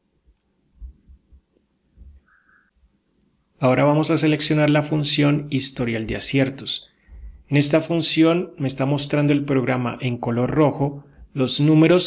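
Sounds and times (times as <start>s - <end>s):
soft low thumps: 0.7s - 2.2s.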